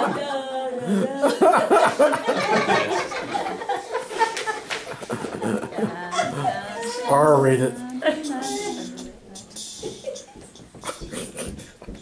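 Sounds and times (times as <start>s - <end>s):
faint vocal sounds: 0.0s - 1.4s, 5.5s - 10.1s
footsteps on carpet: 9.0s - 12.0s.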